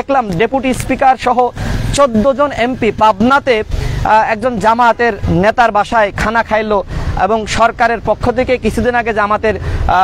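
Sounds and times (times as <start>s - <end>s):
man speaking: 0.0s - 10.0s.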